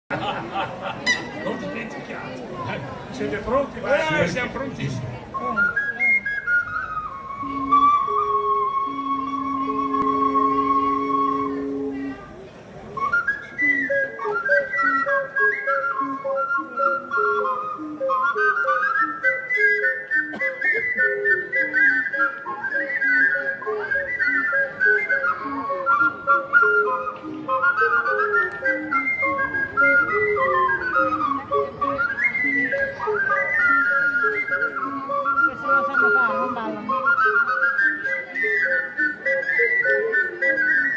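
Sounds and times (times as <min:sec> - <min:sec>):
ocarina ensemble playing: 0:00.2 - 0:40.9.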